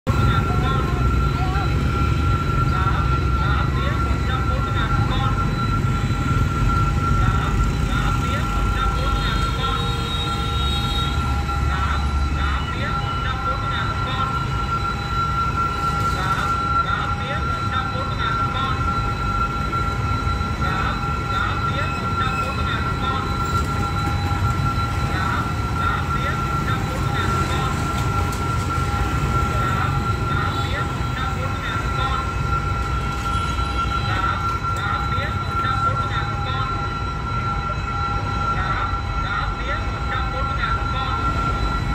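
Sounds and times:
level crossing warning alarm: 0.0 - 41.9.

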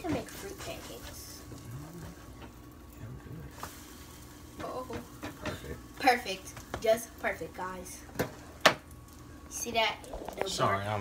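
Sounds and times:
batter sizzling in a pan: 0.0 - 11.0.

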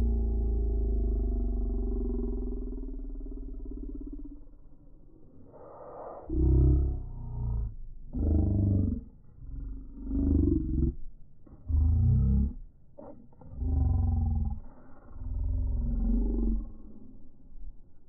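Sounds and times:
slowed-down deep roaring voice: 0.0 - 18.0.

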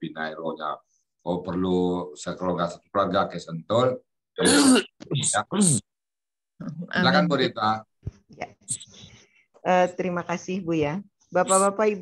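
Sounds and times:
person throat-clearing: 4.4 - 5.9.

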